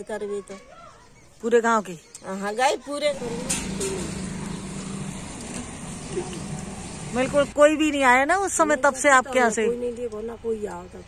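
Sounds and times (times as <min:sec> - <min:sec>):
low outdoor rumble: 0:03.1 - 0:08.2.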